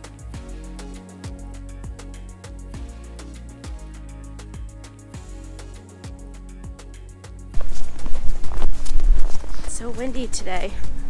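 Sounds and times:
footsteps crunching through snow: 0:07.6 - 0:10.1
wind buffeting microphone: 0:07.6 - 0:11.0
woman speaking: 0:09.6 - 0:11.0.

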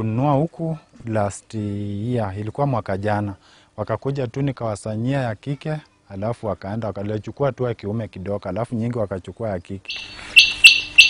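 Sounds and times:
quail calling: 0:09.9 - 0:11.0.

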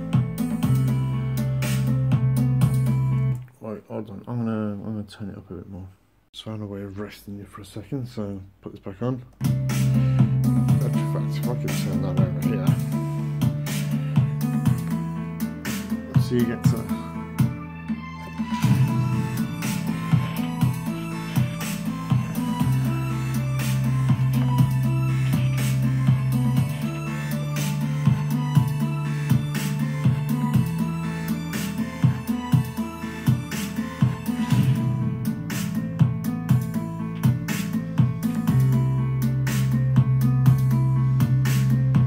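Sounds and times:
electronic music with bass: 0:00.0 - 0:03.4, 0:09.4 - 0:42.0.

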